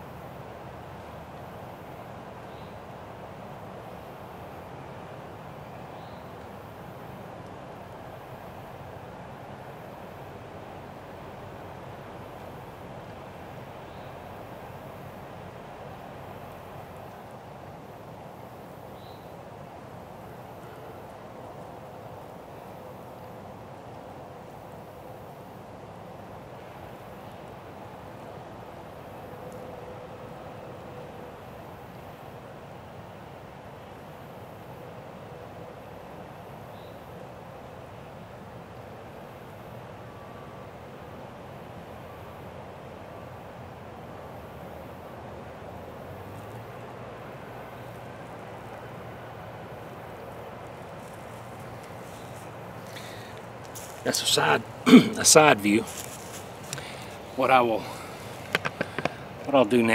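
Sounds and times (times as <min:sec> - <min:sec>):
constant hiss in woods: 0:00.0 - 0:59.9.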